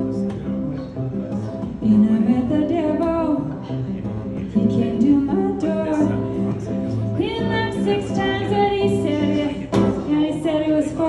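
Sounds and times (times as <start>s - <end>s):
acoustic guitar: 0.0s - 11.0s
woman singing: 1.7s - 3.7s, 4.6s - 6.4s, 7.0s - 11.0s.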